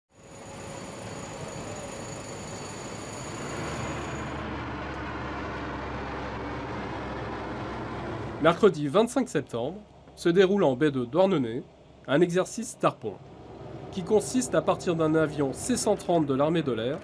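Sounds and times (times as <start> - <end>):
turboprop aircraft passing overhead: 13.2 - 16.4.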